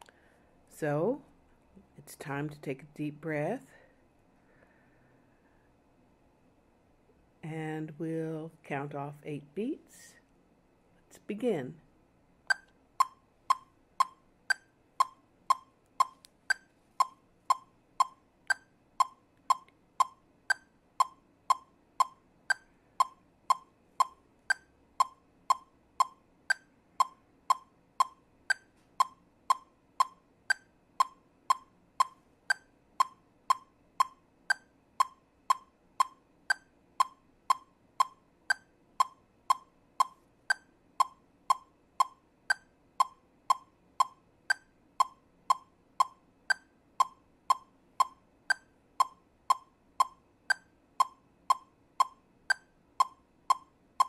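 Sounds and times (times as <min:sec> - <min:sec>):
metronome clicking: 0:12.5 - 0:54.0.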